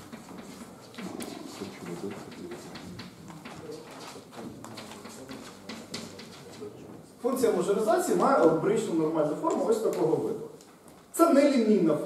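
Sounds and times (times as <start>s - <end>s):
chalk tapping and scratching on blackboard: 0.0s - 6.7s.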